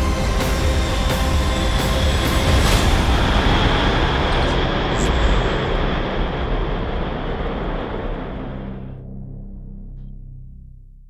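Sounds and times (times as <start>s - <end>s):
rumbling roar with heavy low end: 0.8s - 9.9s.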